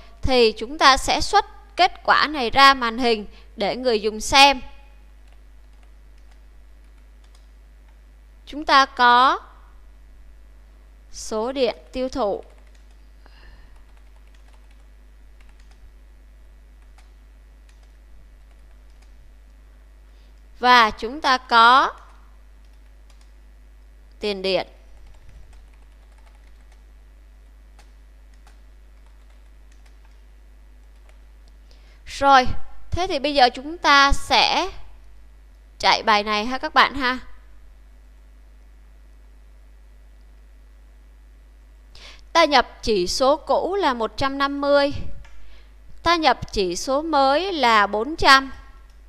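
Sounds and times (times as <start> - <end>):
steady low hum: 0.0 - 49.0
keyboard typing: 5.0 - 8.0, 11.7 - 13.1, 13.7 - 16.0, 16.8 - 19.2, 21.8 - 23.4, 24.9 - 27.0, 27.7 - 31.6.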